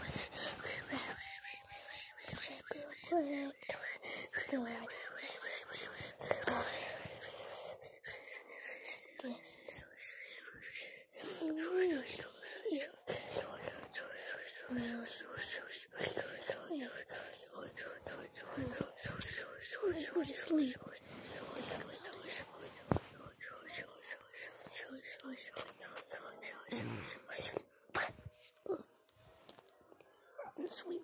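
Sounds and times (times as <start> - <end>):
child whispering: 0.0 - 29.0, 30.0 - 31.0.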